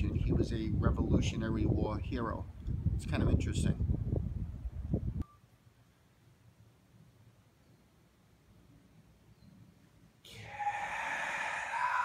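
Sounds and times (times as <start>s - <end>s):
man's breathy exclamation: 10.3s - 12.0s.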